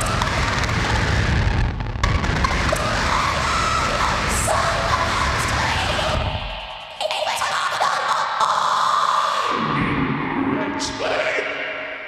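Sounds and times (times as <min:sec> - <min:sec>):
drums: 0:00.0 - 0:07.1
loud live electronic music: 0:00.0 - 0:07.3.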